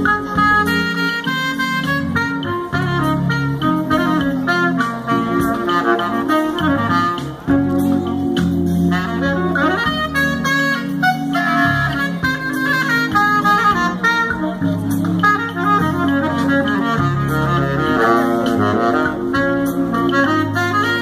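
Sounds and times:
saxophone playing jazzy melody: 0:00.0 - 0:21.0
steady bass line: 0:00.0 - 0:21.0.

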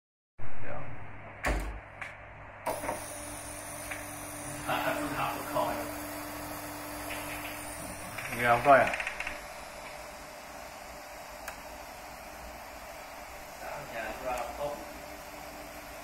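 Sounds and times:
gear motor whining: 0:02.7 - 0:16.0
clicks: 0:11.4 - 0:11.7.

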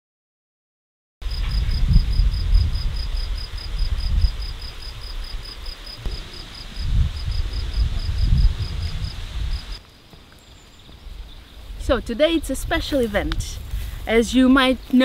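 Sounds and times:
wind rumble on microphone: 0:01.2 - 0:09.8, 0:10.9 - 0:15.0
cricket chirping: 0:01.2 - 0:11.6.

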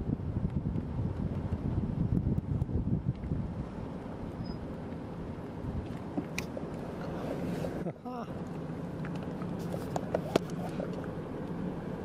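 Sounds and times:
wind buffeting microphone: 0:00.0 - 0:07.8.

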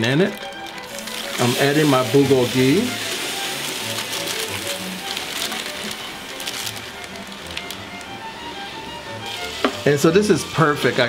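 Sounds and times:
soft background music: 0:00.0 - 0:11.0
meat sizzling in a skillet: 0:00.8 - 0:07.5, 0:09.2 - 0:09.9.

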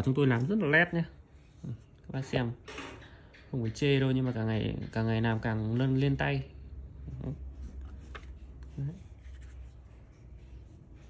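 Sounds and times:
scratchy rustles: 0:07.0 - 0:11.0.

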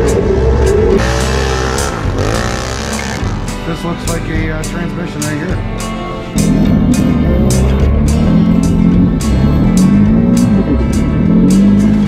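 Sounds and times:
bending guitar lines: 0:00.0 - 0:12.0
rock music with drum beat: 0:00.8 - 0:12.0.

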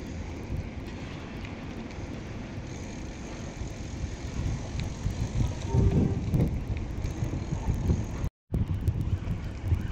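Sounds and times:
bicycle rumble: 0:00.0 - 0:09.9
wind rushing over microphone: 0:00.0 - 0:09.9.

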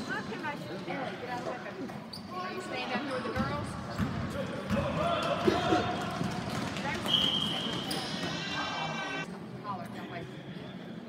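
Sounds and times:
basketball bouncing on gym floor: 0:03.3 - 0:05.0.

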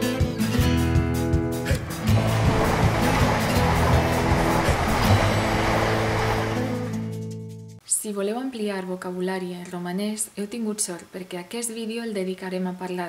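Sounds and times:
rushing swell of noise: 0:01.9 - 0:07.0.

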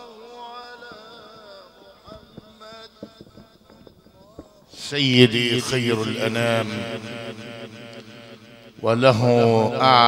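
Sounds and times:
man chanting devotional song: 0:00.0 - 0:10.0.

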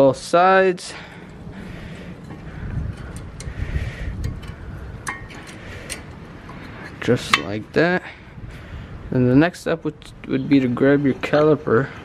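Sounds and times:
low steady rumble: 0:00.0 - 0:12.0
metallic clicks and taps: 0:04.2 - 0:06.6.

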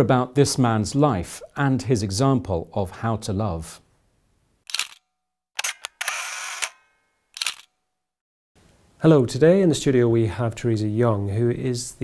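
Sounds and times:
sharp clicks: 0:07.4 - 0:07.7.

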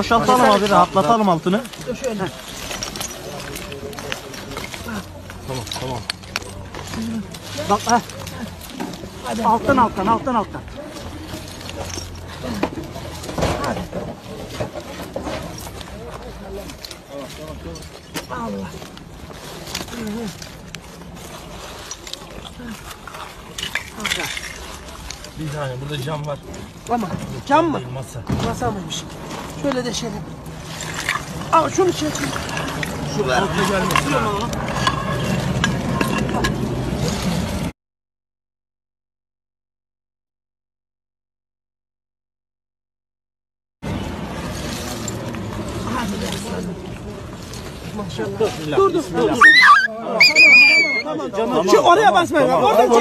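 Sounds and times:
rubble clattering: 0:00.0 - 0:37.6
concrete and stones scraping: 0:00.0 - 0:37.7, 0:43.9 - 0:53.0.

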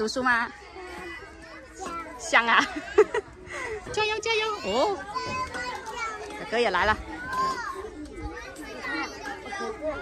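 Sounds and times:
children talking and calling: 0:00.0 - 0:10.0.

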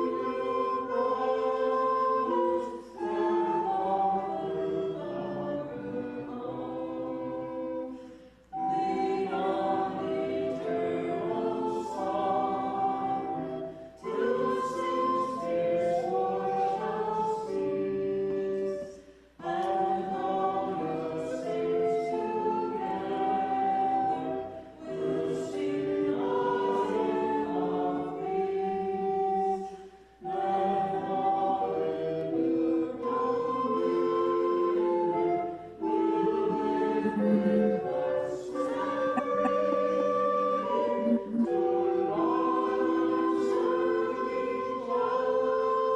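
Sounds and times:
congregation singing a hymn: 0:00.0 - 0:45.9.

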